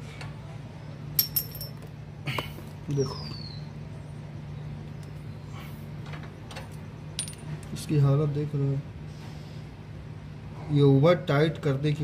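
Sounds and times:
light metal clinks: 0:01.2 - 0:01.9.

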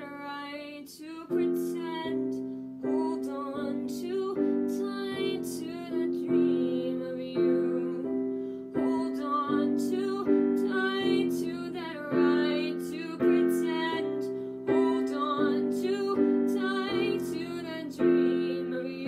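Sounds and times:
piano chords: 0:00.0 - 0:19.0
woman singing: 0:00.0 - 0:19.0.

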